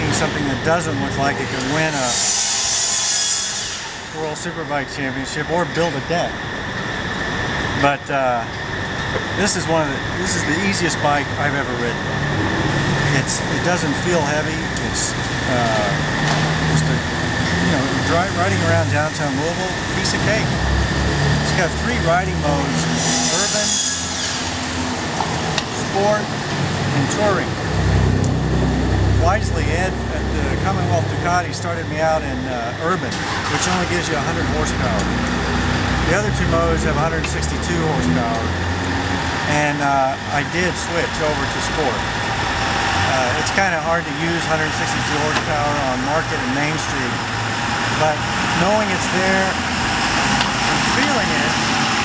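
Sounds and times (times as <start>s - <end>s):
loud high-pitched hiss: 0.0s - 26.3s
traffic hum: 0.0s - 52.0s.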